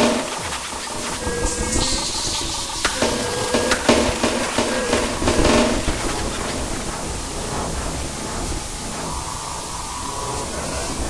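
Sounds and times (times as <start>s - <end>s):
low rumble: 0.0s - 11.0s
steady wash of noise: 0.0s - 11.0s.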